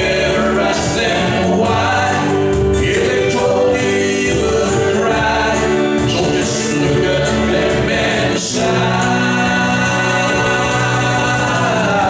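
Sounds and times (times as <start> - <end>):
acoustic and electric guitars: 0.0 - 12.0
group of voices singing: 0.0 - 12.0.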